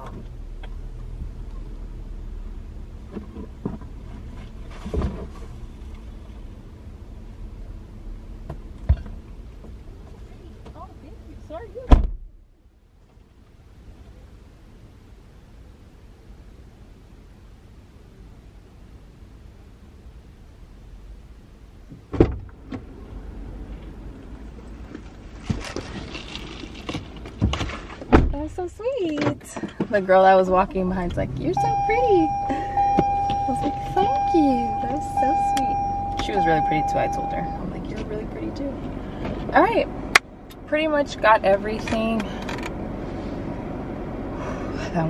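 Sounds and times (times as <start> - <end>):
car door shutting: 11.9 - 12.3, 22.0 - 22.9, 31.7 - 34.2
steady low hum: 29.6 - 45.0.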